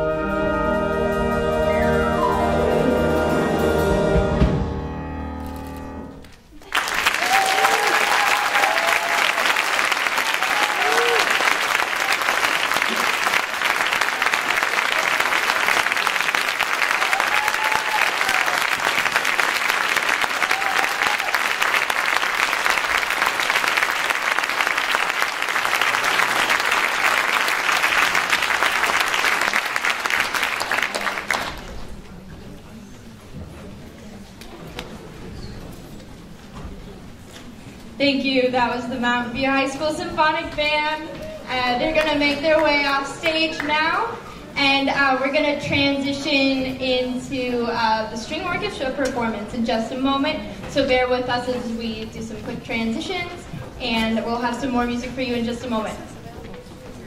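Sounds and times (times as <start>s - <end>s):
concert band chord: 0.0s - 6.2s
audience applause: 6.5s - 32.0s
cheers and whoops: 7.0s - 12.3s, 17.0s - 18.8s, 20.3s - 21.6s.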